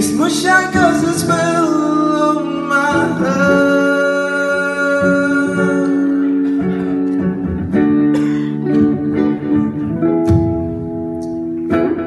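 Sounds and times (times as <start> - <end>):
electric guitar strumming chords: 0.0 - 12.0.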